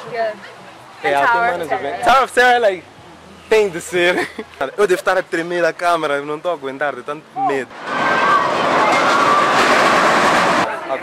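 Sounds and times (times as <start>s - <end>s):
roller coaster cars rushing on track: 7.7s - 11.0s.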